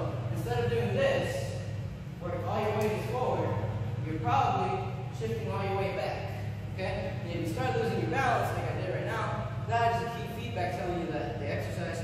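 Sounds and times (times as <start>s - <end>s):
person talking: 0.0s - 12.0s
steady low hum: 0.0s - 12.0s.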